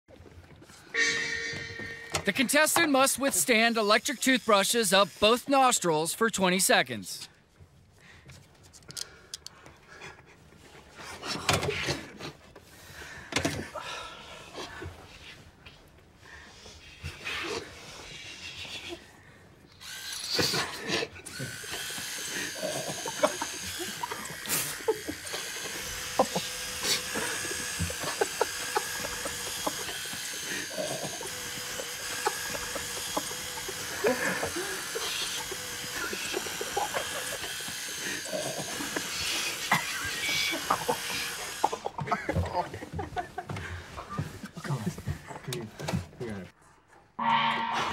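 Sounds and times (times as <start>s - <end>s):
electric toothbrushes buzzing: 1.0s - 6.8s, 19.7s - 43.6s.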